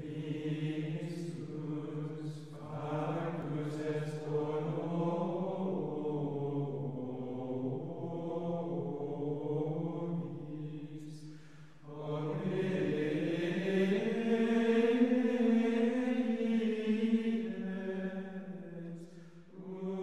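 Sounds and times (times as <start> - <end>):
voices chanting in unison: 0.0 - 20.0.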